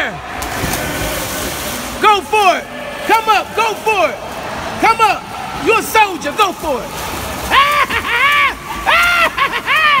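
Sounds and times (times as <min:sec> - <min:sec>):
water churning and splashing: 0:00.0 - 0:10.0
dive splash into pool: 0:00.3 - 0:02.0.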